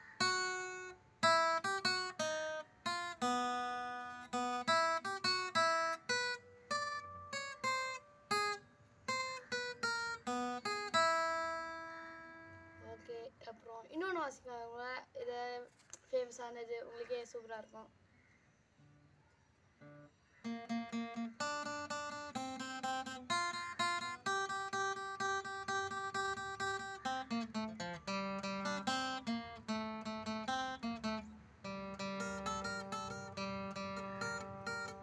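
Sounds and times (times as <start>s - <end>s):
acoustic guitar picking melody: 0.0s - 13.1s, 19.8s - 35.0s.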